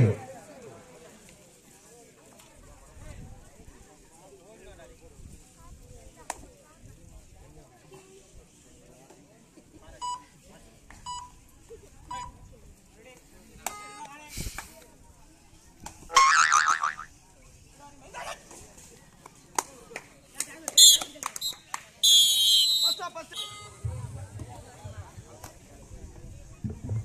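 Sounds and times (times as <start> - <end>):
short beeps: 11.1 - 11.4, 22.6 - 23.9
referee whistle trilling blast: 22.0 - 23.8.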